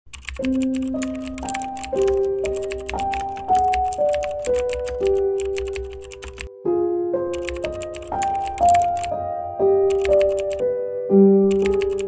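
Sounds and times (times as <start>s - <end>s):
rapid keyboard typing: 0.1s - 6.5s, 7.3s - 9.1s, 9.9s - 10.6s, 11.5s - 12.0s
music of held notes: 0.2s - 12.0s.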